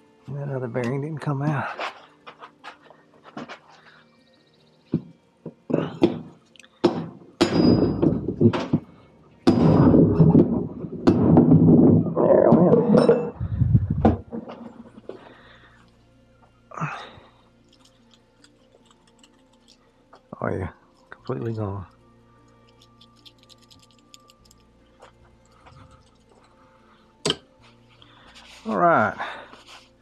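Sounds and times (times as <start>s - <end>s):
hammer striking steel punch: 6.0s - 8.7s, 9.4s - 10.3s, 11.0s - 11.5s, 27.2s - 27.5s.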